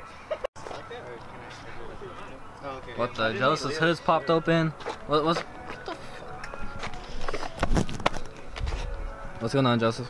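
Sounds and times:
footsteps: 4.6 - 9.4.

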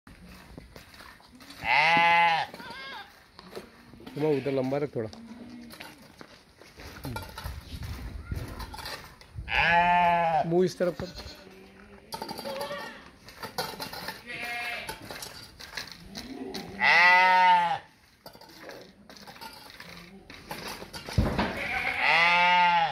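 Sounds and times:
sheep bleating: 1.5 - 3.2, 9.5 - 13.2, 14.2 - 15.0, 16.1 - 17.9, 21.5 - 22.9.

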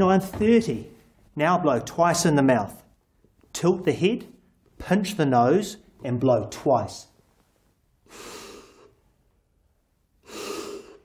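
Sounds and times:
breaths blown into manikin: 8.0 - 9.1, 10.2 - 11.0.

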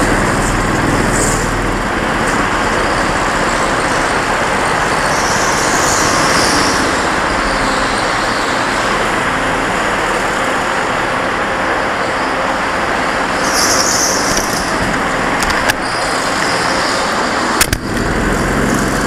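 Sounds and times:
go-kart engine noise: 0.0 - 19.0.

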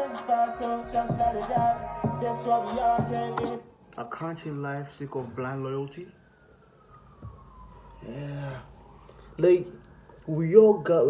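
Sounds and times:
faint siren wailing: 0.0 - 11.0.

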